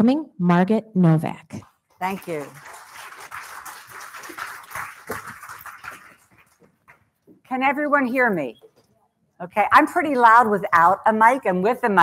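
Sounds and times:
audience applauding: 2.0 - 6.8.

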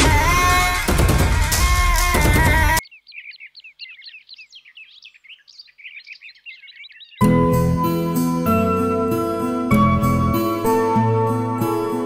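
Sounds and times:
small birds chirping: 0.2 - 7.3.

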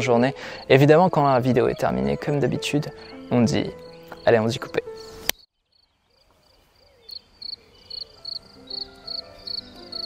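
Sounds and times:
cricket chirping: 3.8 - 10.0.

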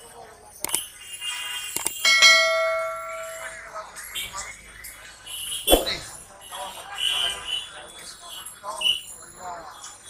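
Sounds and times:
notification bell ding: 2.1 - 3.8.

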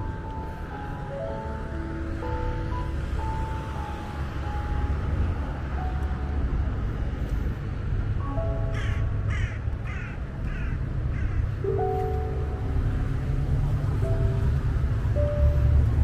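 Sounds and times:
low outdoor rumble: 0.0 - 16.0
soft piano music: 0.0 - 16.0.

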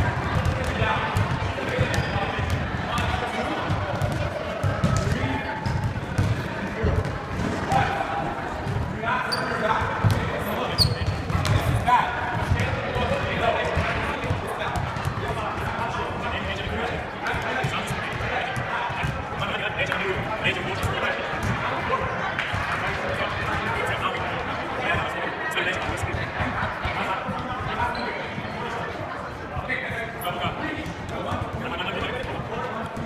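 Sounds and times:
chatter of many voices: 0.0 - 33.0
balls bouncing on wooden floor: 0.2 - 7.5
sneaker squeaks: 1.2 - 2.6, 9.2 - 11.7, 27.9 - 28.8.

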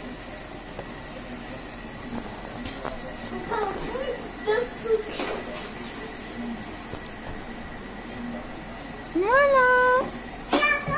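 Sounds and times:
household room noise: 0.0 - 10.9.

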